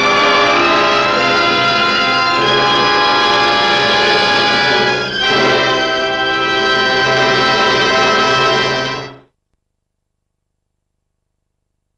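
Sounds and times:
orchestra holding loud chord: 0:00.0 - 0:09.2.

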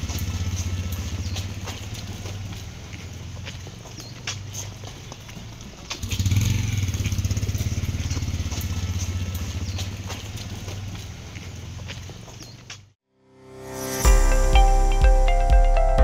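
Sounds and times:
light clicks and scuffs: 0:00.0 - 0:06.0, 0:08.0 - 0:13.0
vehicle engine running: 0:00.0 - 0:12.4.

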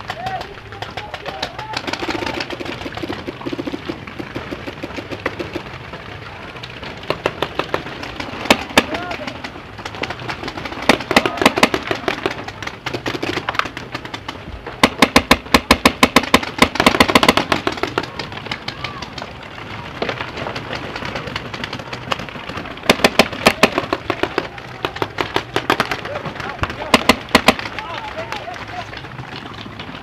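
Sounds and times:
paintball markers firing: 0:00.0 - 0:05.9, 0:06.6 - 0:29.9.

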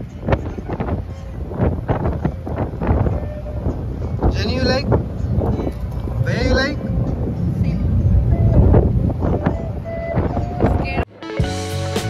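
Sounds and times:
wind buffeting microphone: 0:00.0 - 0:11.1
ferry engine rumble: 0:00.0 - 0:12.0.

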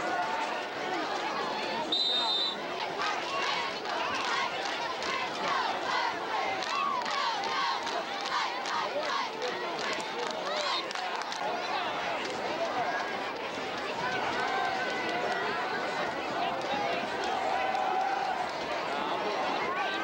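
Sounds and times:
crowd shouting and cheering: 0:00.0 - 0:20.0
referee whistle: 0:01.9 - 0:02.6.

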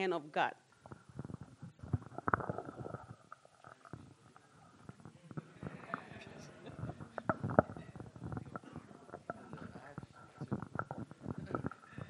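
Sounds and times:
microphone handling bumps: 0:04.8 - 0:12.0.

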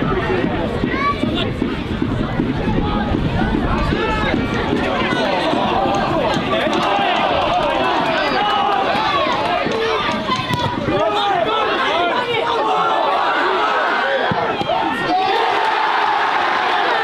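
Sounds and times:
many voices shouting: 0:02.6 - 0:17.0.

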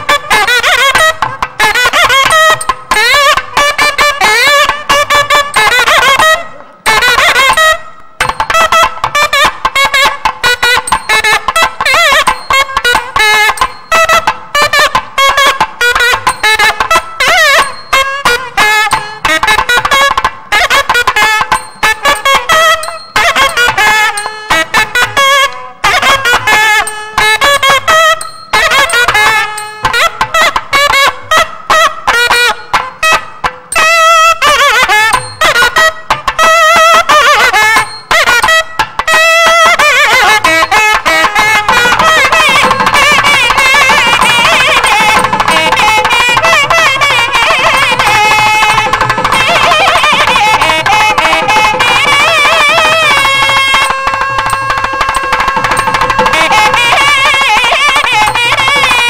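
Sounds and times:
reed instrument melody: 0:00.0 - 0:59.0.

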